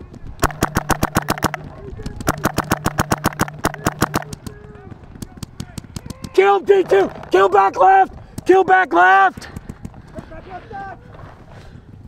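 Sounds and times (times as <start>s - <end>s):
steady low hum: 0.0s - 6.0s
paintball marker firing: 0.4s - 7.3s.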